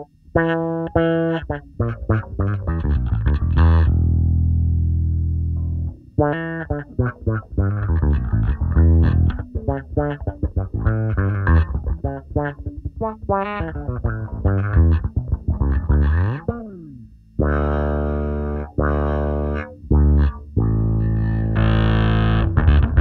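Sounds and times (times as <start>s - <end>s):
electric bass with filter sweep: 0.0s - 23.0s.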